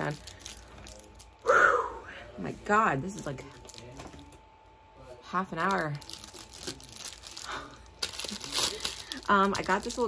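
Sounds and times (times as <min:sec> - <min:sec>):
plastic wrapping crinkling: 0:00.0 - 0:01.4, 0:03.2 - 0:04.4, 0:05.6 - 0:10.0.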